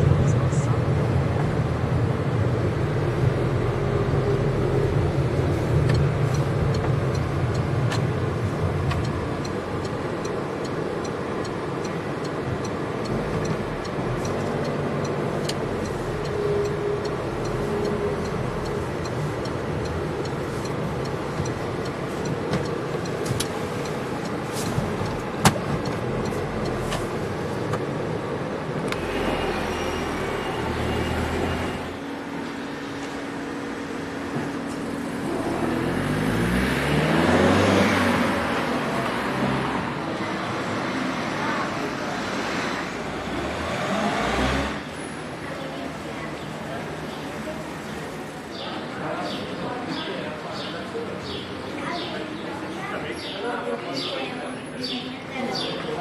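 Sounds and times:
car engine hum: 0.0 - 40.3
road noise inside car: 0.0 - 56.0.

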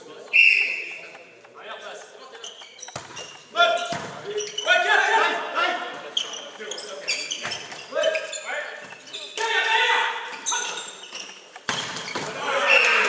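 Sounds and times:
shoes squeaking on gym floor: 0.2 - 9.6, 10.2 - 13.0
players shouting: 4.6 - 6.0, 7.9 - 10.9, 12.2 - 13.0
volleyball smack: 11.6 - 12.4.

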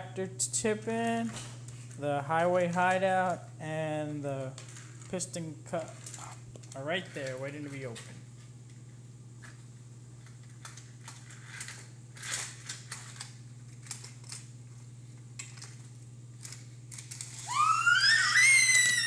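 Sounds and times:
steady low hum: 0.0 - 19.0
toddler squealing: 17.4 - 19.0.

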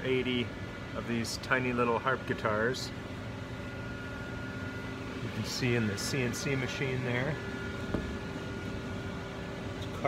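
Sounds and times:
fans humming and hissing: 0.0 - 10.0.

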